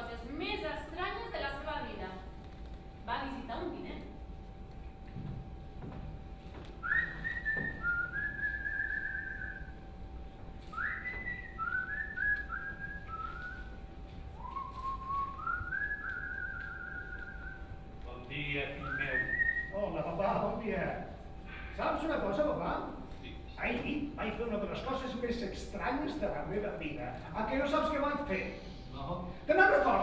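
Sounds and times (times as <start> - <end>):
person whistling a tune: 6.8 - 9.7, 10.7 - 13.8, 14.4 - 17.6, 18.8 - 19.8.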